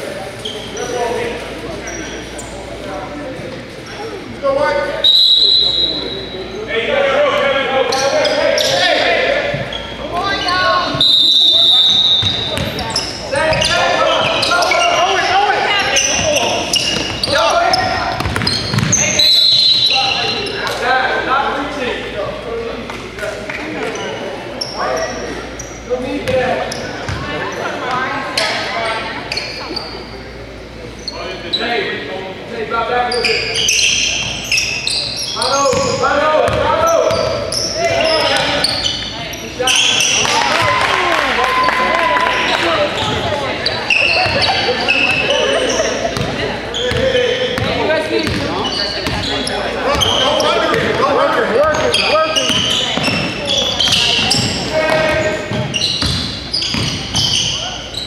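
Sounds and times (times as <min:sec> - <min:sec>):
sneakers squeaking: 0:00.0 - 0:06.9, 0:07.6 - 0:32.0, 0:33.0 - 0:58.0
people calling out: 0:03.8 - 0:20.8
basketball bouncing on hardwood: 0:12.2 - 0:12.8, 0:18.2 - 0:19.0.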